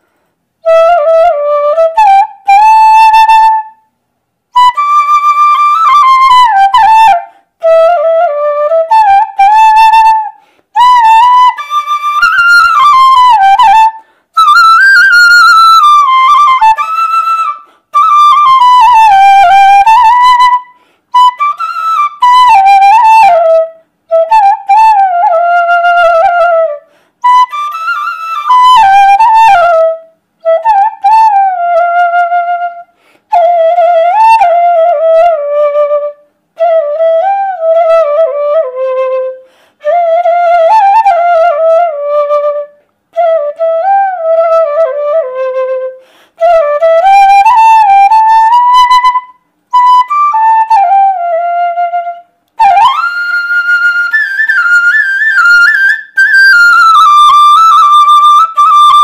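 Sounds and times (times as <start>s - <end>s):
bamboo flute melody: 0.6s - 59.0s.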